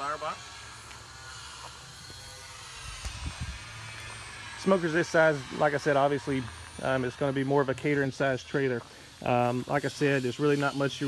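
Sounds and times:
faint outdoor hum: 0.0 - 11.0.

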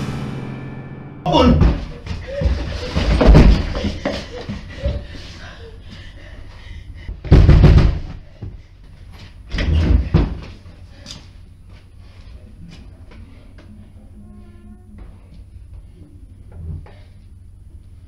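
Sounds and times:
banging on wooden door: 1.4 - 4.0, 7.3 - 8.1.

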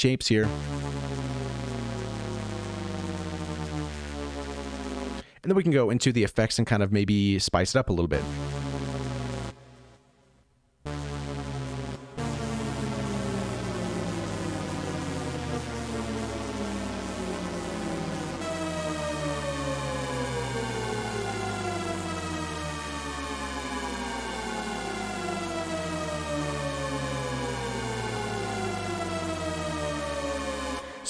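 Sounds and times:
descending synthesizer shepard tone: 0.4 - 5.2, 8.2 - 9.9, 10.9 - 31.0.

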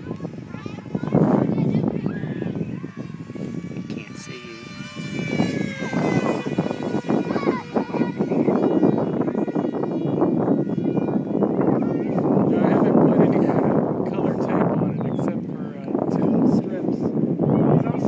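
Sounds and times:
model plane propeller whining: 0.0 - 18.0
wind buffeting microphone: 0.0 - 18.0.

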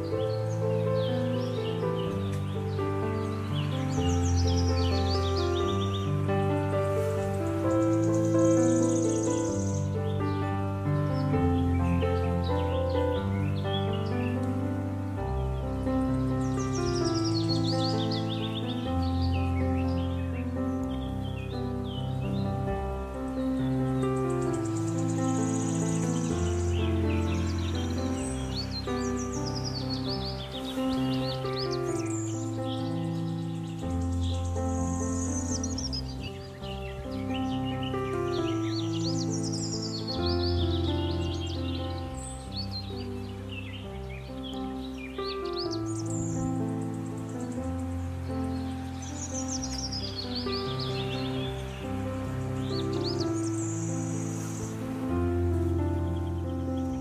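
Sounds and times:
birdsong chirping: 0.0 - 57.0
calm music of held chords: 0.0 - 57.0.

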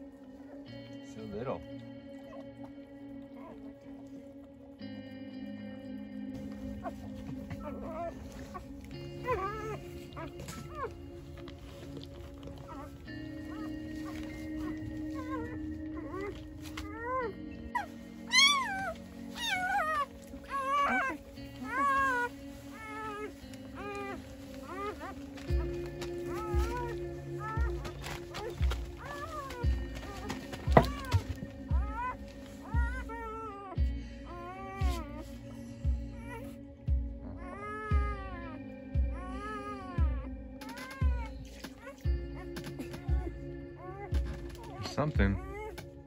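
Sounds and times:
background music with steady beat: 0.0 - 46.0
puppy crying in high squeals: 9.2 - 11.0, 13.5 - 35.2, 37.4 - 45.9.

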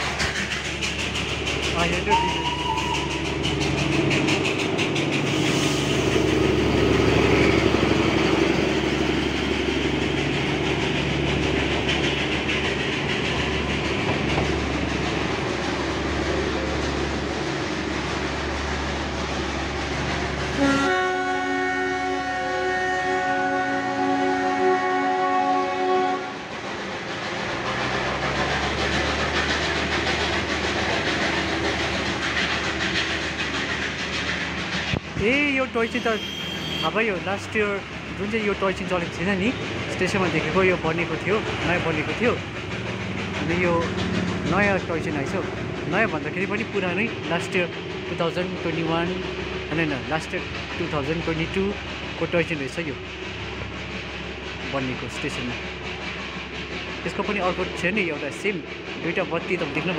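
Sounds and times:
diesel locomotive running: 0.0 - 59.9
long train horn blast: 20.5 - 26.5, 35.9 - 37.0.

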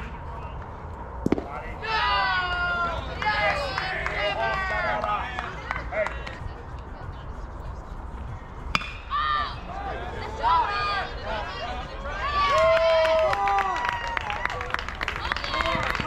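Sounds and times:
sharp crack: 1.2 - 1.6
people shouting and yelling: 1.4 - 6.2, 8.8 - 14.6.

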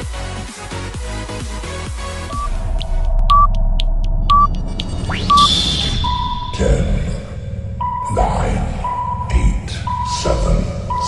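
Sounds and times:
steady low hum: 2.3 - 11.0
short timer beeps: 3.2 - 3.6, 4.3 - 6.6.

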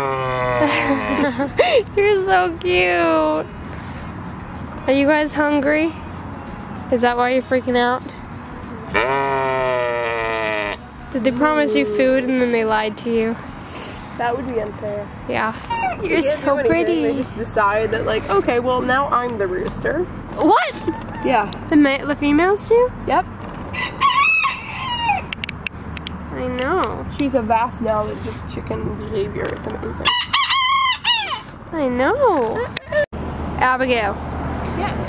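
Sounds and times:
sheep bleating: 8.9 - 10.8
rooster crowing: 23.7 - 25.3, 30.0 - 31.6.

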